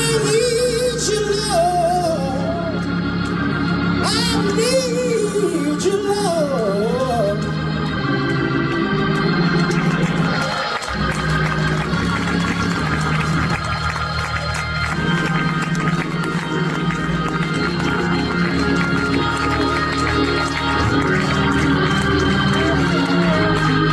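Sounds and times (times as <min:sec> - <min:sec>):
bass line: 0:00.0 - 0:23.9
organ chords: 0:00.0 - 0:23.9.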